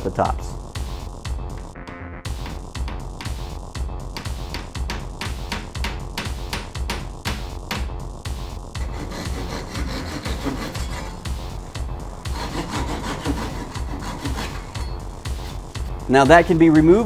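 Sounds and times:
background music with steady beat: 0.0s - 17.0s
hand saw rasping wood: 8.8s - 11.6s, 12.2s - 15.0s.

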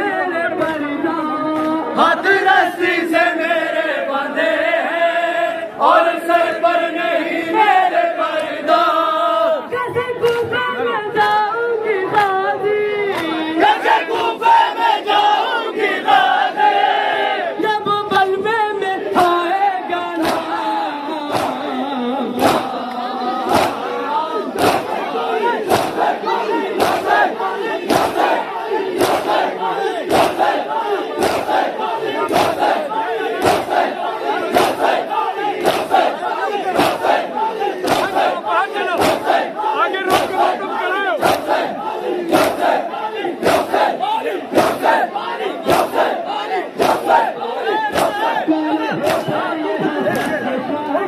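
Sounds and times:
men chanting and shouting: 12.0s - 51.0s.

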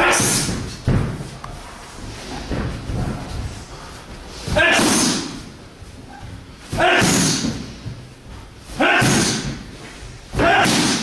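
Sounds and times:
person shouting: 8.8s - 9.4s, 10.4s - 11.0s.

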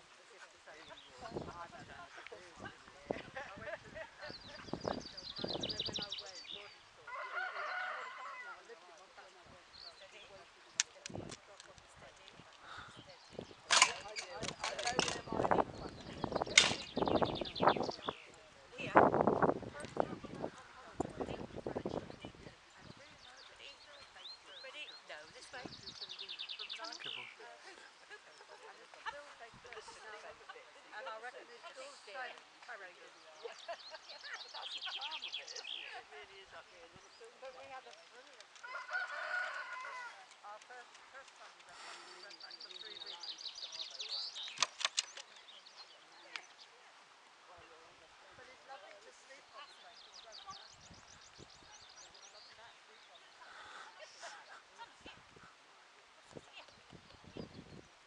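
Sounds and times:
rooster crowing: 7.1s - 8.6s, 38.6s - 40.2s.

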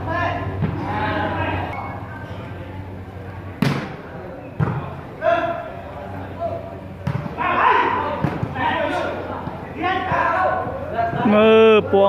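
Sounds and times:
men shouting: 7.4s - 12.0s.

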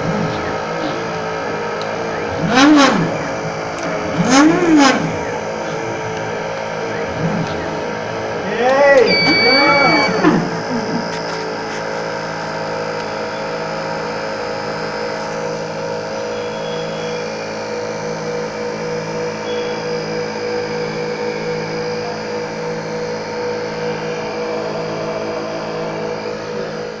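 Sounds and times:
low pulsing tone: 0.0s - 27.0s
machine motor and fan hum: 0.0s - 27.0s.

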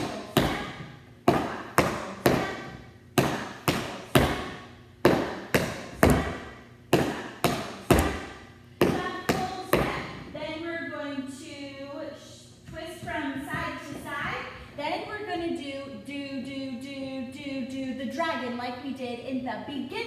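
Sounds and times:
tap shoes on hard floor: 12.7s - 14.6s.

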